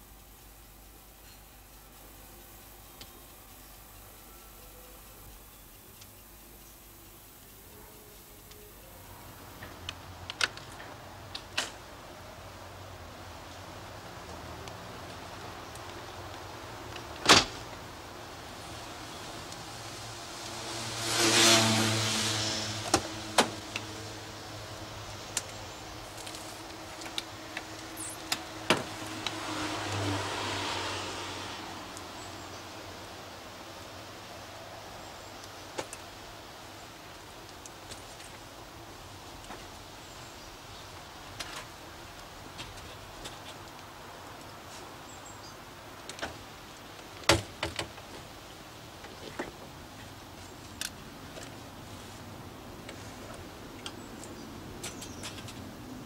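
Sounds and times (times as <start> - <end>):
car passing: 12.4 - 35.4
door banging shut: 17.2 - 17.6.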